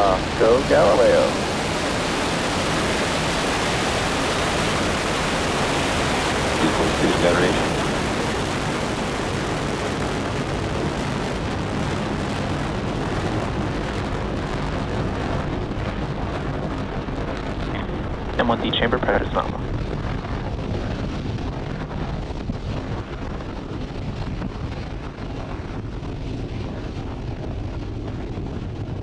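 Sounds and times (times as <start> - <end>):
rocket engines roaring at liftoff: 0.0 - 29.0.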